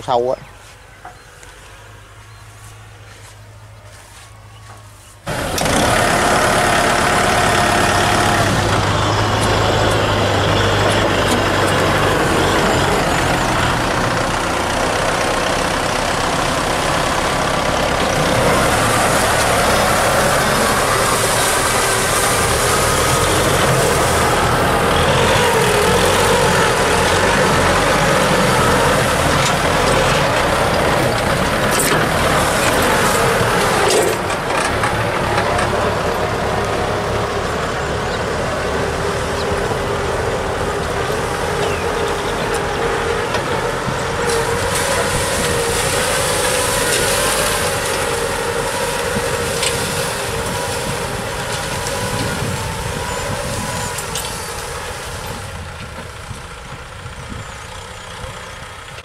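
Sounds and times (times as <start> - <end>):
tractor diesel engine running: 0.0 - 59.0
plough discs churning soil: 2.2 - 59.0.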